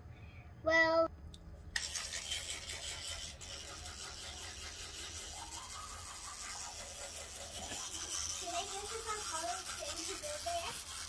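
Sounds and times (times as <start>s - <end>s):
toothbrush scrubbing teeth: 1.8s - 11.0s.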